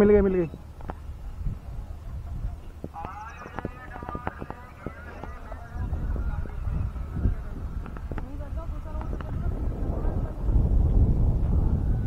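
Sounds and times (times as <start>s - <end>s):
wind rumbling on microphone: 0.0s - 12.0s.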